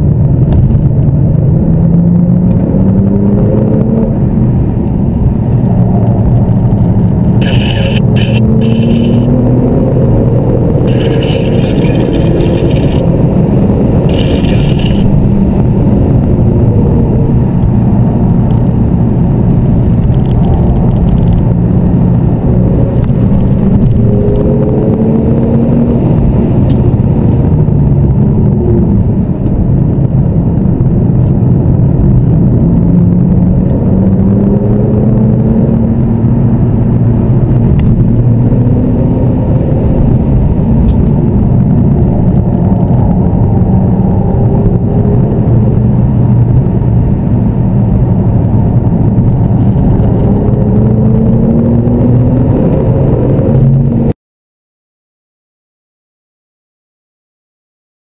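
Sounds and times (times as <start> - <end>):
car engine accelerating: 0.0 - 54.2
tyre and road rumble: 0.0 - 54.2.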